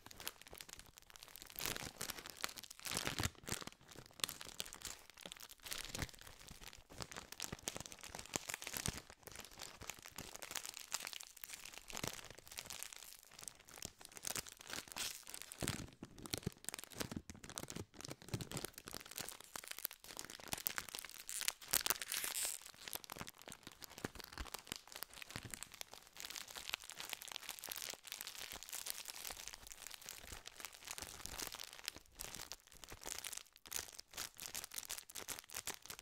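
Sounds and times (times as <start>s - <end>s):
plastic wrapper crinkling: 0.0s - 36.0s.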